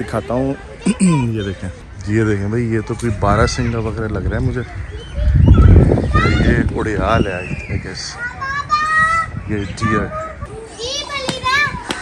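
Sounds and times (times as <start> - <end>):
children calling out: 7.3 - 12.0.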